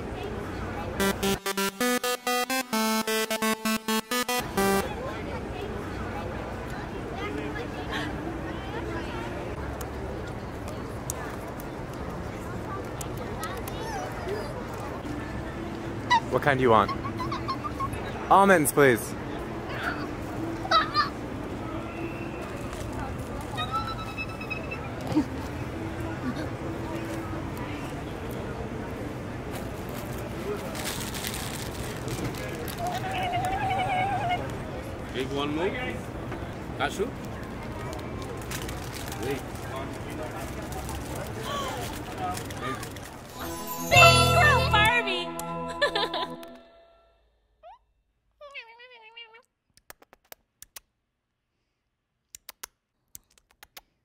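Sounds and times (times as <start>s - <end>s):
high-pitched tone: 1.0s - 5.1s, 43.3s - 47.2s
low traffic rumble: 4.8s - 43.4s.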